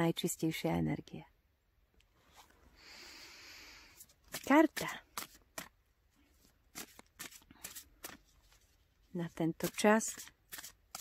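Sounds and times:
cards being shuffled: 0:04.0 - 0:11.0.

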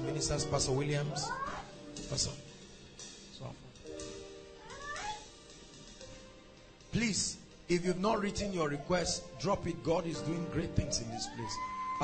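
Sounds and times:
soft background music: 0:00.0 - 0:12.0
short wavering cry: 0:04.6 - 0:05.3, 0:10.6 - 0:12.0.

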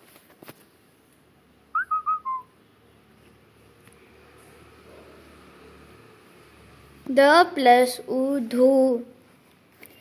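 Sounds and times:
whistled phrase: 0:01.7 - 0:02.6.

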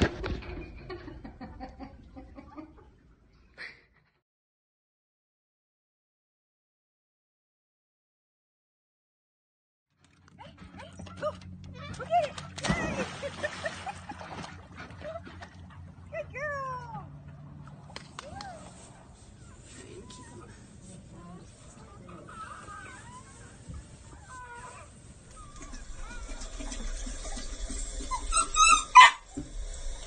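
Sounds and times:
dog whining: 0:21.8 - 0:30.0.

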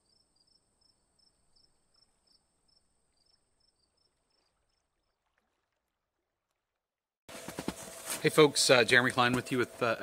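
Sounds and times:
insect chirping: 0:00.0 - 0:05.2.

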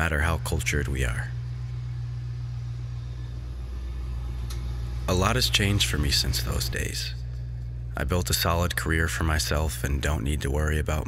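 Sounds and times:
low rumbling hum: 0:00.0 - 0:11.0.

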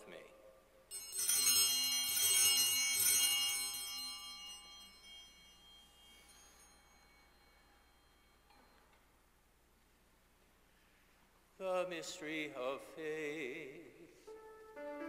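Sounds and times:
altar bells ringing: 0:00.9 - 0:09.2.

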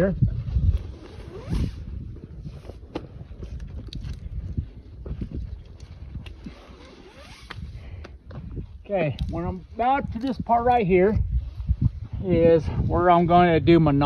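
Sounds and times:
rope rasping against tree trunk: 0:06.4 - 0:07.7.

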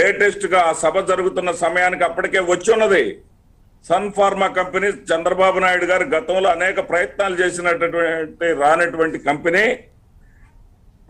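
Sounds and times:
man speaking: 0:00.0 - 0:03.2, 0:03.8 - 0:09.9.

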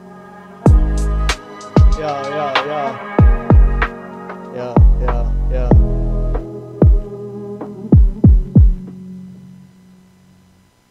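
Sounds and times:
deep bass drum hits: 0:00.7 - 0:01.0, 0:03.2 - 0:03.9, 0:04.8 - 0:07.1, 0:08.0 - 0:08.9.

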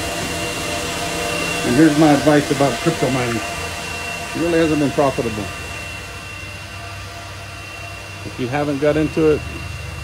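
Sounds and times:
cooling fans whooshing hiss: 0:00.0 - 0:10.0
high whine: 0:00.0 - 0:10.0.

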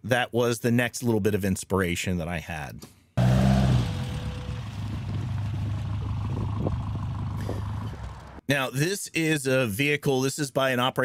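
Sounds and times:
car engine driving past: 0:03.2 - 0:08.4.

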